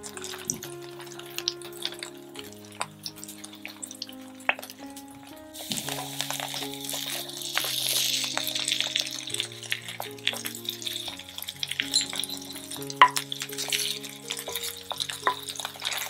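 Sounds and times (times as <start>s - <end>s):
fritters sizzling in oil: 0.0s - 16.0s
soft background music: 0.0s - 16.0s.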